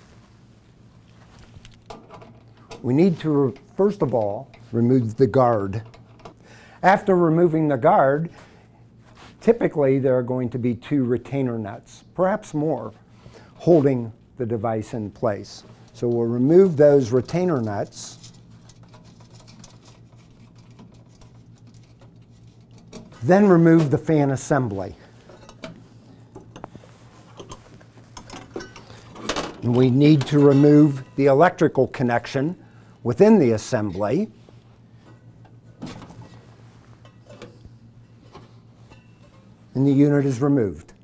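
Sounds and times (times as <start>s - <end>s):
low steady hum: 0.0s - 41.0s.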